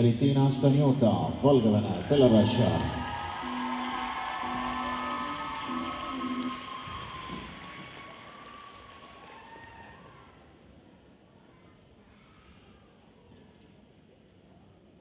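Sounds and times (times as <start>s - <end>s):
held music notes: 0.6s - 7.8s
spectators applauding: 1.5s - 10.4s.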